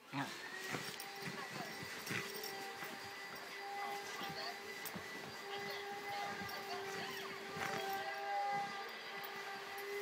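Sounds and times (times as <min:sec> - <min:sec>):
nylon sleeping bag rustling: 0:00.4 - 0:10.0.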